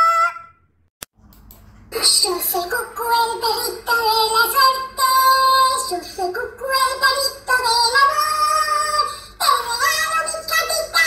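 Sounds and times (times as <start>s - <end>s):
high-pitched voice singing: 0.0s - 0.6s, 2.0s - 11.0s.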